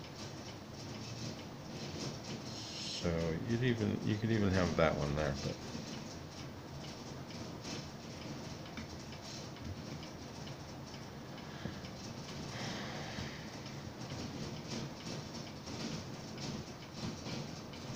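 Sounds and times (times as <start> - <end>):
rubber bands clicking and rustling: 0.0 - 2.6, 3.2 - 17.9.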